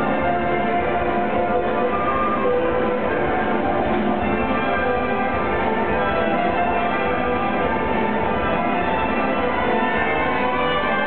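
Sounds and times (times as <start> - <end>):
orchestra playing a waltz: 0.0 - 11.0.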